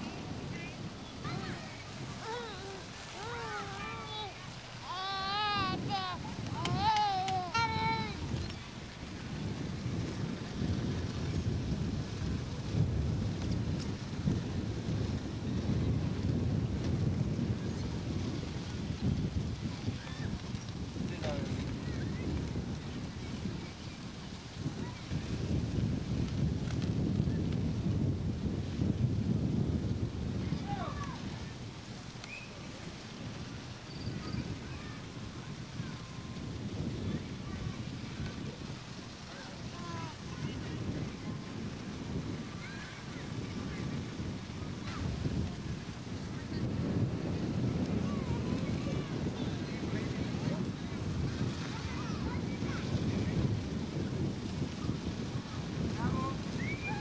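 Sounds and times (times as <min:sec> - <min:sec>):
faint distant voices: 0:00.0 - 0:27.9, 0:30.2 - 0:57.0
wind buffeting microphone: 0:00.0 - 0:57.0.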